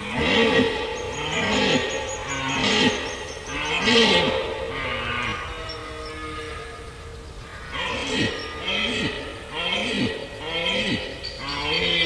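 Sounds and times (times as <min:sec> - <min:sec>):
deer stag roaring: 0:00.0 - 0:07.0.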